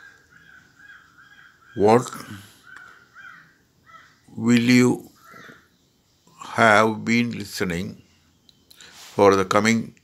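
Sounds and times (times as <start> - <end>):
faint bird calls: 0.0 - 9.3
speech: 1.8 - 2.5, 4.3 - 5.1, 6.4 - 8.0, 9.2 - 10.0.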